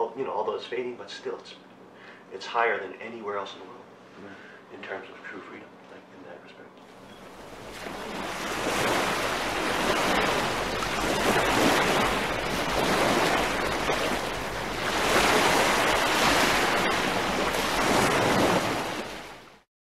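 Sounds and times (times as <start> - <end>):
rushing surf-like noise: 7.1 - 19.6.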